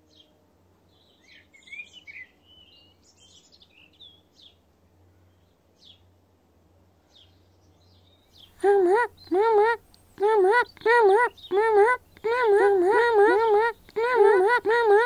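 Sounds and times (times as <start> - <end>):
faint low hum: 4.2 - 15.0
small birds chirping: 7.1 - 15.0.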